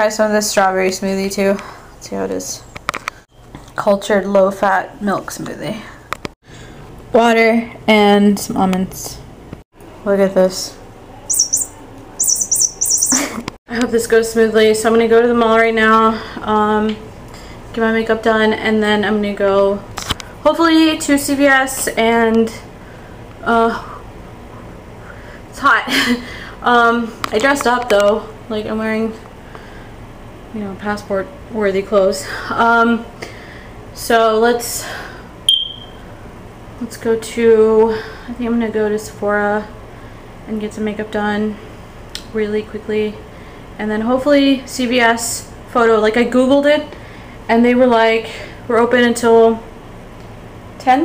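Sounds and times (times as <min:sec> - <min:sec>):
high electronic beep: 0:11.3 - 0:13.2, 0:35.5 - 0:36.0
bird-like chirping peeps: 0:11.3 - 0:13.4.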